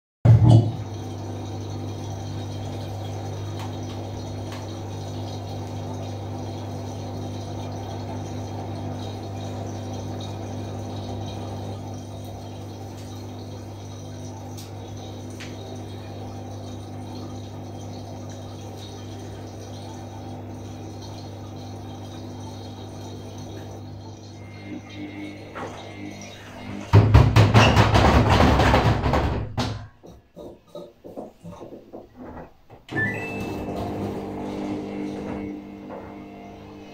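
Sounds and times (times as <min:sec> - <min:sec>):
washing machine motor hum: 0:00.2 - 0:36.9.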